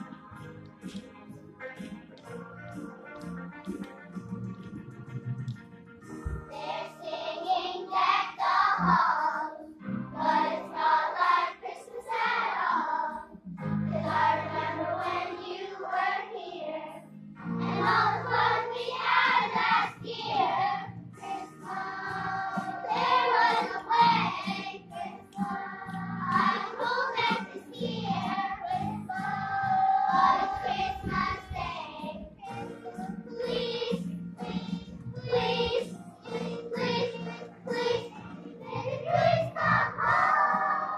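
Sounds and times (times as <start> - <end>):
instrumental accompaniment: 0.0 - 11.8, 13.1 - 40.9
children's choir singing: 6.2 - 40.9.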